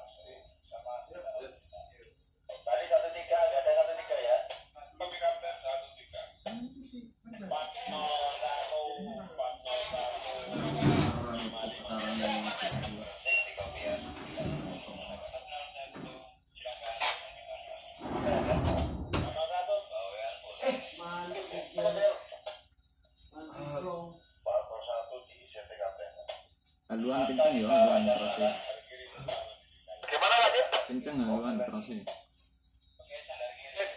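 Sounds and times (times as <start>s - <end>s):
voices over two-way radio: 0.0s - 18.5s, 19.2s - 33.9s.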